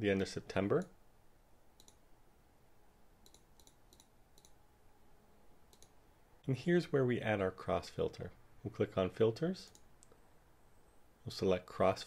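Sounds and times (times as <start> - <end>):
computer mouse clicks: 1.8 - 2.0, 3.2 - 4.6, 5.7 - 6.0.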